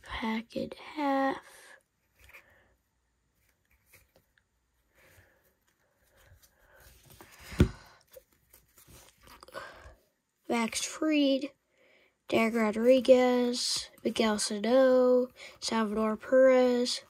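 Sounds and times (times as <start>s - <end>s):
trading cards sliding and rustling: 1.9s - 9.4s.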